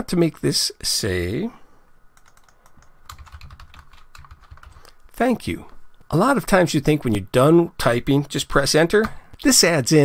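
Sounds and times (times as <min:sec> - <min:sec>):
keyboard typing: 0:02.2 - 0:04.8.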